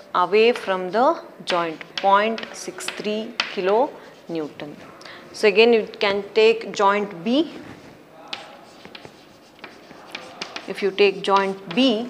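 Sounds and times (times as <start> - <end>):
chalk tapping on chalkboard: 1.5 - 4.6, 8.2 - 12.0
chalk scratching on chalkboard: 1.5 - 5.7, 7.4 - 12.0.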